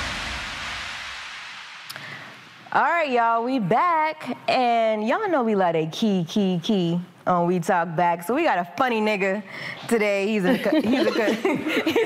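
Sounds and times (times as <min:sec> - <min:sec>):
hiss-like noise wash: 0:00.0 - 0:04.3.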